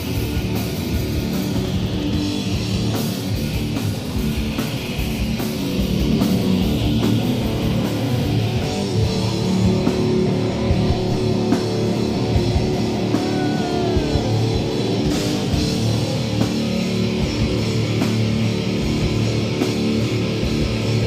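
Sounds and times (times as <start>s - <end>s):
distorted electric guitar riffing: 0.0s - 21.0s
drum kit playing: 0.0s - 21.0s.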